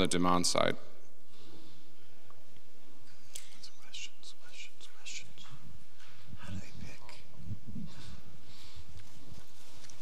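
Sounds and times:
person whispering: 3.1s - 5.6s, 6.3s - 8.2s.

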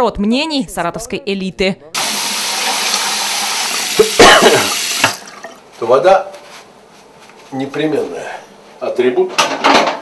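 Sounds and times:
tap water running into basin: 2.0s - 5.6s.

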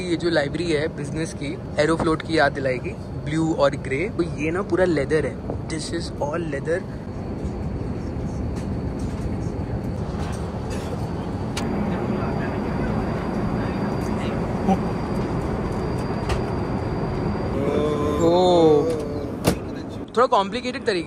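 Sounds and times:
airliner cabin rumble: 0.0s - 20.1s.

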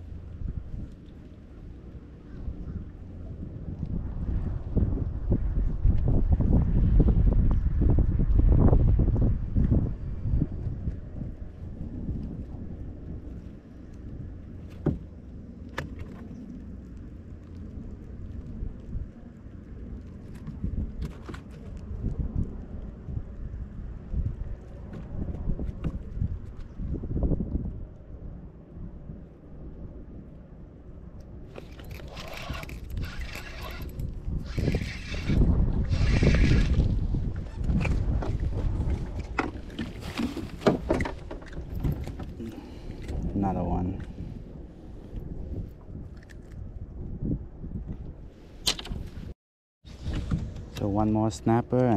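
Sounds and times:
wind buffeting microphone: 0.0s - 51.9s.

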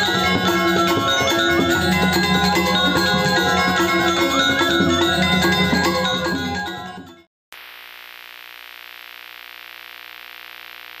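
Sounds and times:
gamelan music: 0.0s - 7.3s.

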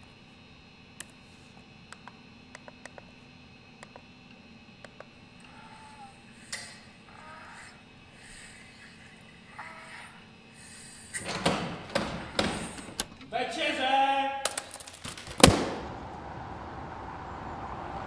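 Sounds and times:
sharp knocks and clatter: 11.2s - 13.2s
loud thud: 15.2s - 16.1s.

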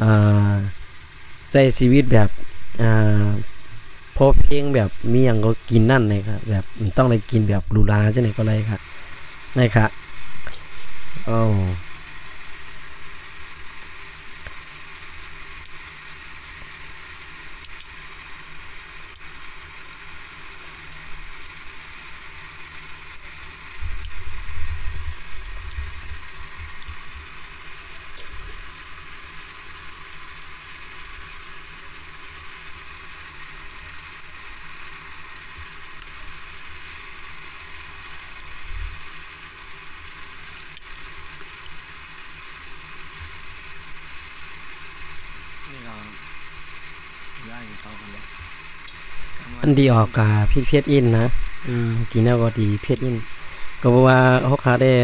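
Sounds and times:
steady background noise: 0.0s - 55.0s.

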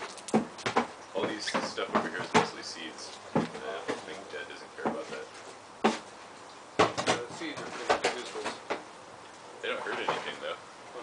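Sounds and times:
sharp knocks of hard objects: 0.3s - 2.6s, 5.8s - 6.1s, 6.8s - 8.9s.

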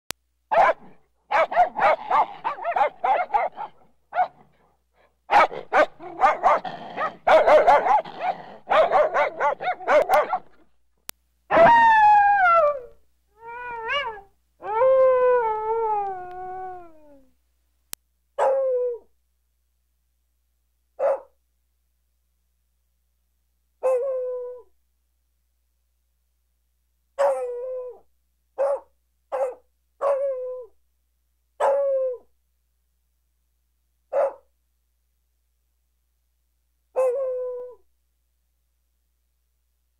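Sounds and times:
dog barking: 0.5s - 4.5s, 5.3s - 10.6s, 18.4s - 18.6s, 21.0s - 21.4s, 27.2s - 27.5s, 28.6s - 30.2s, 31.6s - 31.8s, 34.1s - 34.5s
dog howling: 11.5s - 17.3s.

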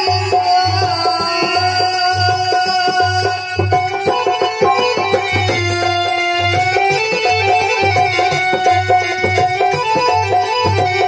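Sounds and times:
barrel drum rhythm: 0.0s - 11.0s
electronic keyboard melody: 0.0s - 11.0s.

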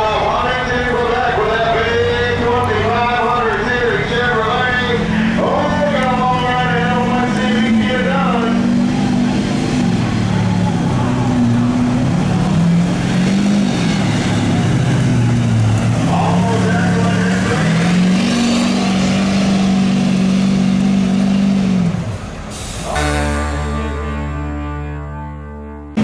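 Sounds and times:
diesel engine running hard: 0.0s - 24.7s.

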